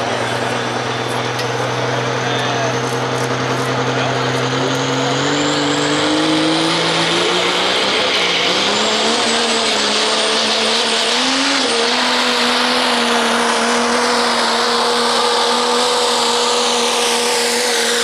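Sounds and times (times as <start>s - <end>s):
diesel truck engine under load: 0.0s - 18.0s.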